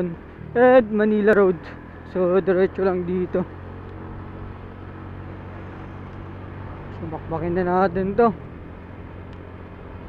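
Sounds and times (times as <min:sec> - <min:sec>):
road and wind noise: 0:00.0 - 0:10.0
scooter engine running: 0:00.0 - 0:10.0.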